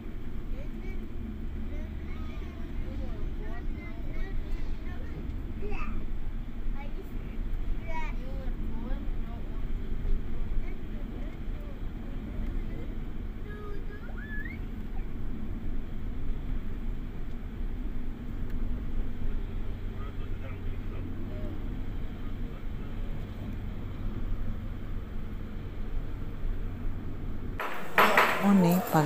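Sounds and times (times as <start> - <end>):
vehicle engine and road noise: 0.0 - 29.0.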